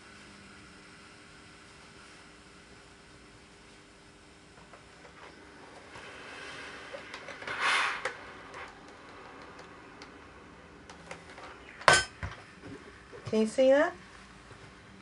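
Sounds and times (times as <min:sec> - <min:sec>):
rustling hiss: 0:05.9 - 0:08.8.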